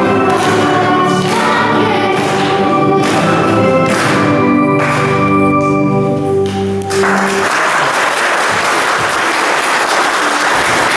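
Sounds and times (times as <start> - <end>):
children's choir singing: 0.0 - 7.9
electric keyboard accompaniment: 0.0 - 9.1.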